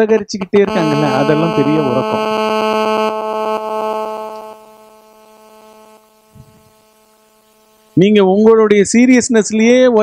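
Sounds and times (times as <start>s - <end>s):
electrical buzz: 0.0s - 8.1s.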